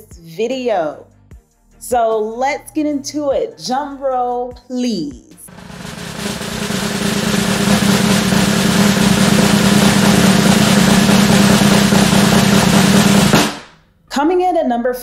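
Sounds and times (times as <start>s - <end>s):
snare drum roll: 5.5s - 13.8s.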